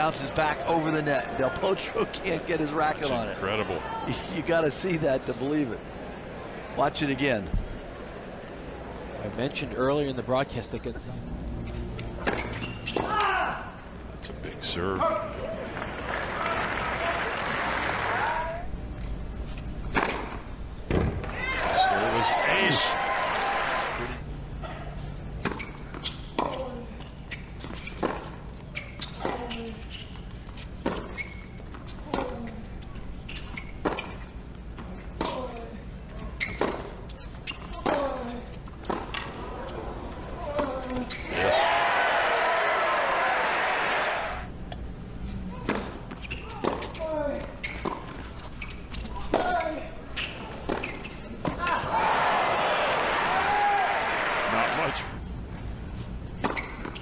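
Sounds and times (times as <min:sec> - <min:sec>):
crowd cheering: 0:00.0 - 0:03.8, 0:15.1 - 0:18.6, 0:21.3 - 0:24.2, 0:41.3 - 0:44.5, 0:51.6 - 0:55.2.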